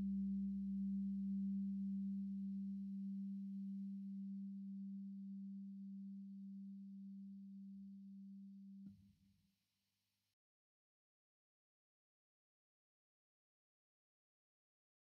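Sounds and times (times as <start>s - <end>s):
low steady held tone: 0.0s - 8.9s.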